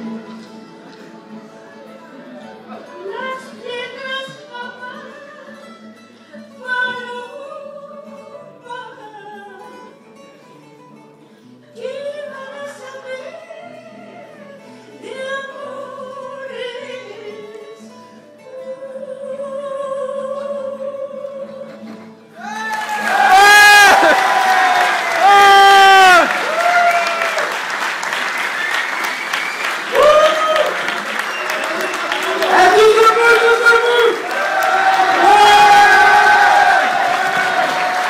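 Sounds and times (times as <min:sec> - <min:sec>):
acoustic guitars: 0:00.0 - 0:38.0
woman singing: 0:02.9 - 0:10.1, 0:11.7 - 0:22.1.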